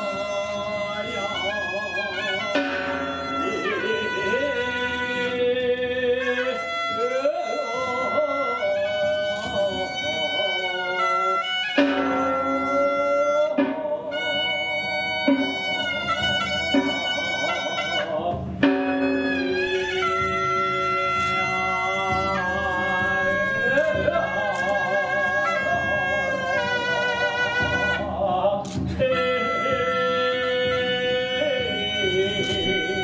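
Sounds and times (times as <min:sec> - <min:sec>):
sharp percussion strikes: 0:00.0 - 0:07.0, 0:08.7 - 0:33.0
wind instrument holding long notes: 0:00.0 - 0:33.0.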